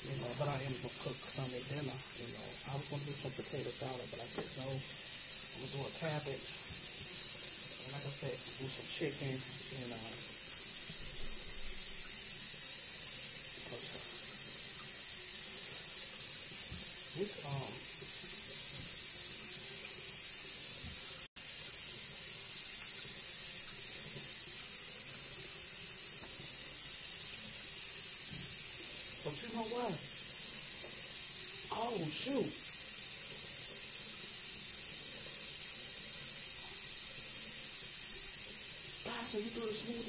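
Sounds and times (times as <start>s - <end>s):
steady high hiss: 0.0s - 19.9s, 21.1s - 40.0s.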